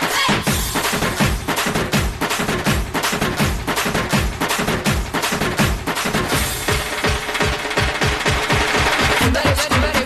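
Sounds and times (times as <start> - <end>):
fast drumming on street drums: 0.0 - 10.0.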